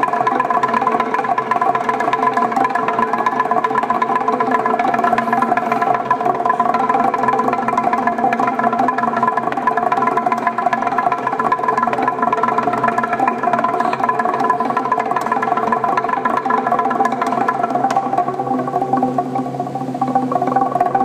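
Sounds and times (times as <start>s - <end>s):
wooden planks struck with sticks: 0.0s - 21.0s.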